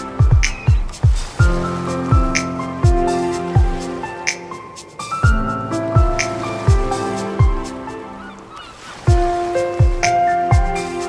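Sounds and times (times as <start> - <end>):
lo-fi hip-hop music: 0.0 - 8.2, 9.1 - 11.0.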